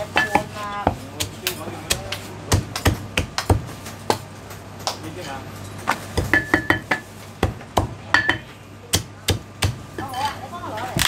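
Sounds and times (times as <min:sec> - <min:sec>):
cleaver chopping on wooden block: 0:00.2 - 0:03.7, 0:06.2 - 0:09.8.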